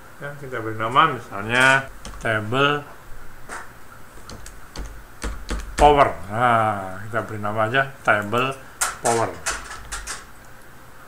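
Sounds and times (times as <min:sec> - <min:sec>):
keyboard keystroke clicks: 0:01.9 - 0:02.7, 0:04.2 - 0:06.3.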